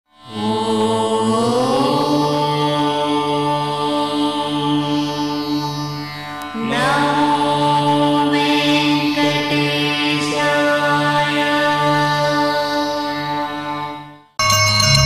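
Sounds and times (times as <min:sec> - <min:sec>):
devotional music held notes: 0:00.2 - 0:14.2.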